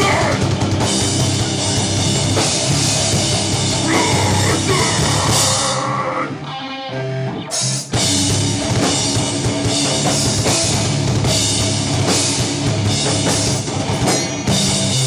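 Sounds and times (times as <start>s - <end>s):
metal band playing loud: 0.0s - 15.0s.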